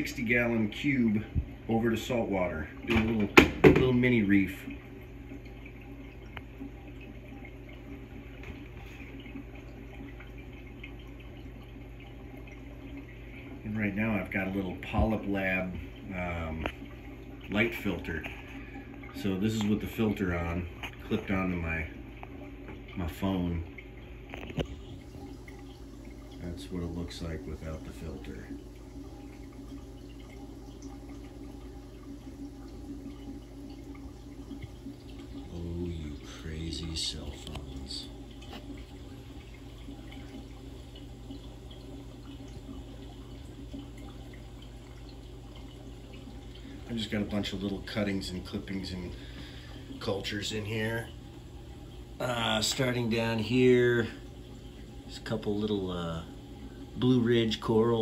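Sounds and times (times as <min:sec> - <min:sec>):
low even hum: 0:00.0 - 0:58.0
water trickling: 0:00.0 - 0:58.0.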